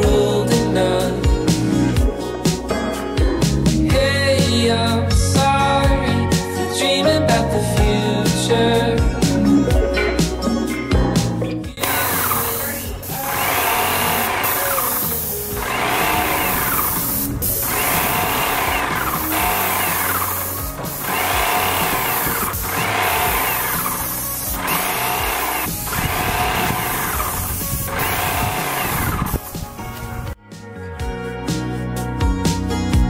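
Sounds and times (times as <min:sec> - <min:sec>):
background music: 0:00.0 - 0:33.0
paint sprayer pump whining: 0:11.8 - 0:30.3.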